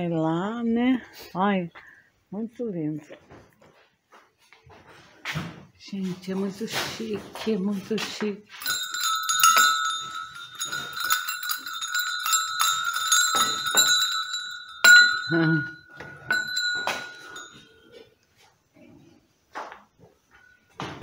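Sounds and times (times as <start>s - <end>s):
small hanging bell ringing: 8.5s - 18.2s.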